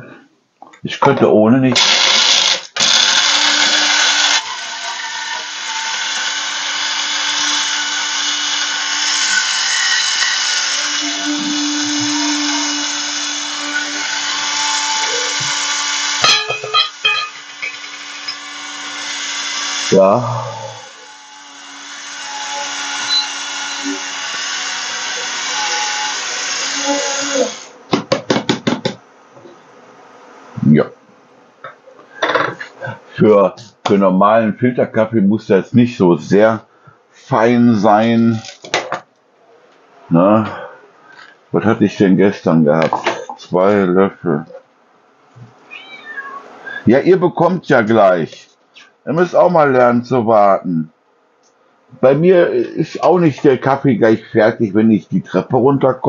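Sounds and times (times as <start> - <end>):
electric coffee grinder grinding: 1.8 - 28.8.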